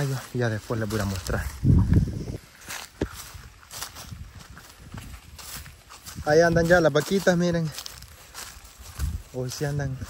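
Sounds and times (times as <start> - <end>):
hooves stepping on dry ground: 0.0 - 10.0.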